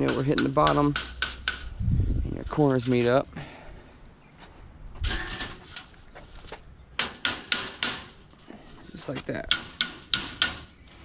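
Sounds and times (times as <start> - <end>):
crimping tool tapping metal: 0.0 - 1.7, 7.0 - 8.2, 9.4 - 10.8.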